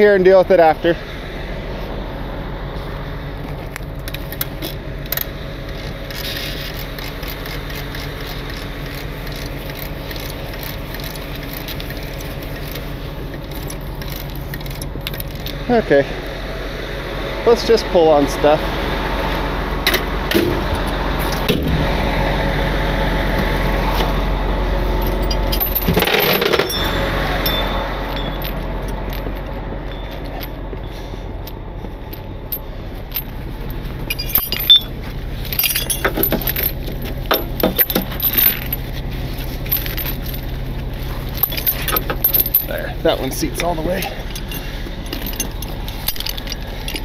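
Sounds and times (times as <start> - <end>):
truck engine idling: 0.0 - 47.0
chain clinking and rattling: 4.0 - 15.6, 24.9 - 47.0.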